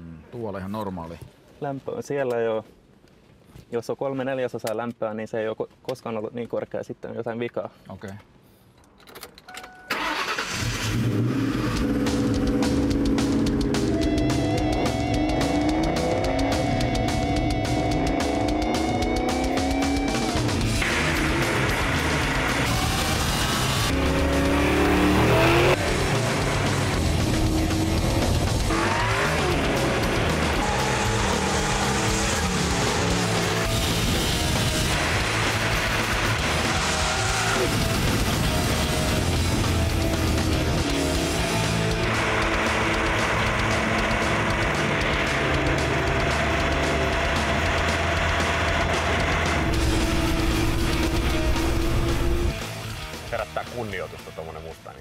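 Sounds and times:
rock music: 9.9 - 55.0
car engine revving and accelerating: 10.2 - 52.6.

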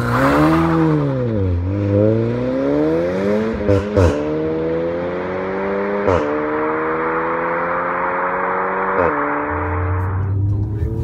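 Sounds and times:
car engine accelerating hard: 0.0 - 11.0.

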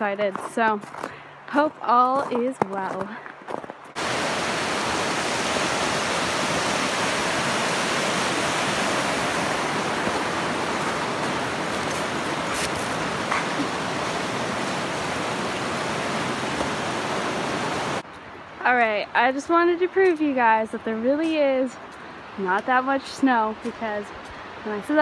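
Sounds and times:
river rushing over rapids: 4.0 - 18.0.

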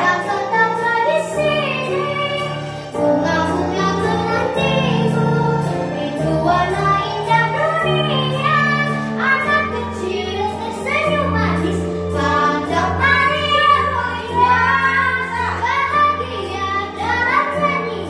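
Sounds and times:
girl singing pop ballad: 0.0 - 18.0.

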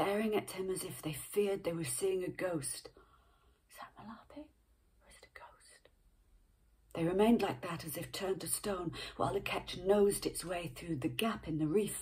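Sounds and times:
woman whispering: 3.7 - 5.9.

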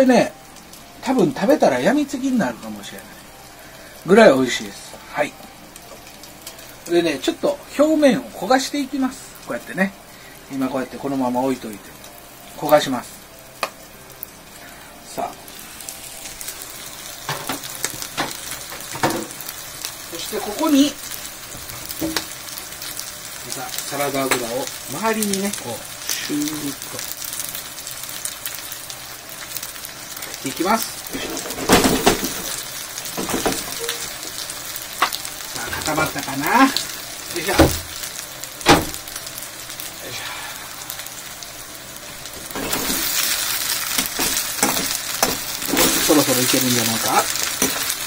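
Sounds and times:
noodles sizzling in frying pan: 0.0 - 48.0.

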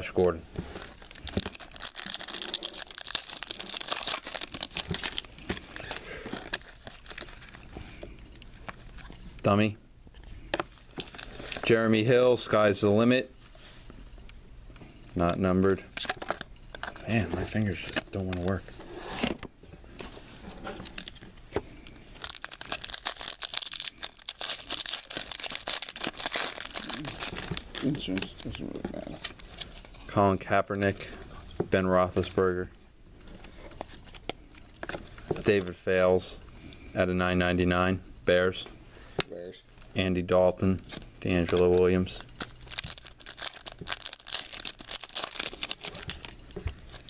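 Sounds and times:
foil wrapper tearing and crinkling: 0.9 - 7.7, 22.2 - 28.3, 41.5 - 47.0.

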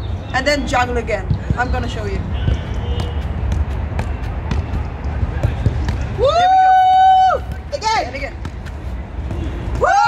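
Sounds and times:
football knocking off foot: 2.4 - 6.2.

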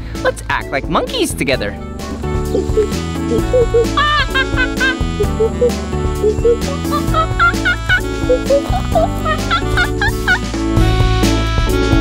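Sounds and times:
upbeat background music: 0.0 - 12.0
man imitating monkey calls: 2.5 - 10.4.

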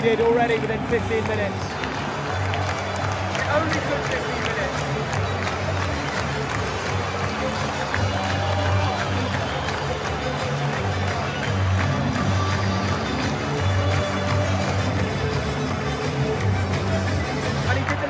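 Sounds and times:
scattered clapping: 0.0 - 18.0.

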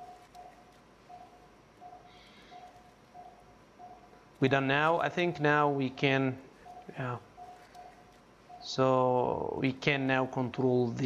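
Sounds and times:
patient monitor pulse beeps: 0.0 - 9.6.

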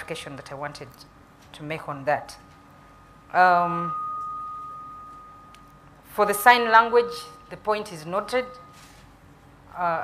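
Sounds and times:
steady high-pitched tone: 2.8 - 9.0.

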